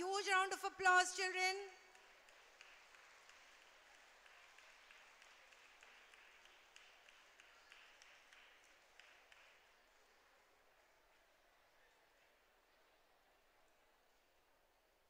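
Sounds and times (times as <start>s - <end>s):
faint audience applause: 1.7s - 15.0s.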